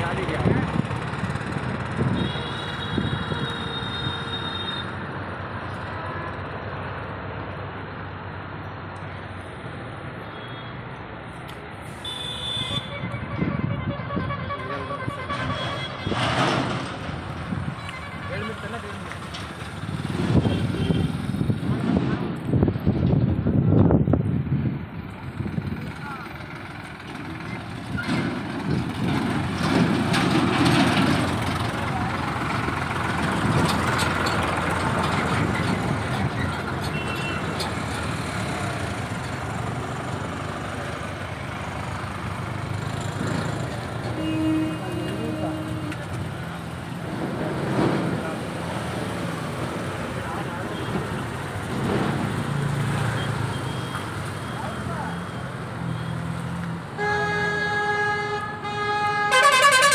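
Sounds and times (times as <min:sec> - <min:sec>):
vehicle engines passing: 0:00.0 - 0:59.9
horn toot: 0:57.0 - 0:59.9.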